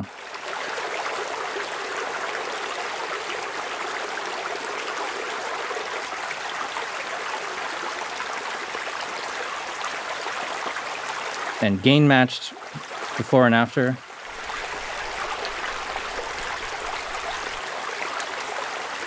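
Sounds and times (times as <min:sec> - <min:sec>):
trickling water: 0:00.0 - 0:19.0
rain falling on pavement: 0:14.0 - 0:19.0.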